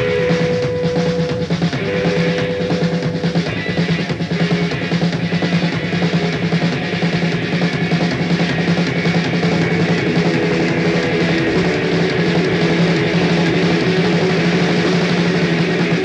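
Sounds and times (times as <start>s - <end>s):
drum kit beat: 0.0s - 16.0s
live rock band playing: 0.0s - 16.0s.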